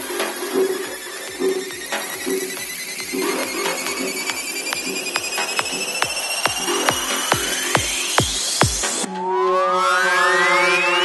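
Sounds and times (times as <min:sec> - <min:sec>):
light electronic beat: 0:00.0 - 0:09.1
rising high synth tones: 0:00.3 - 0:11.0.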